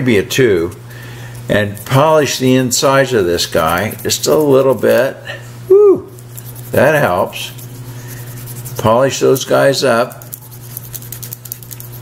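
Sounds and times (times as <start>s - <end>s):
abrasive strip scratching metal: 3.4s - 5.1s, 6.2s - 12.0s.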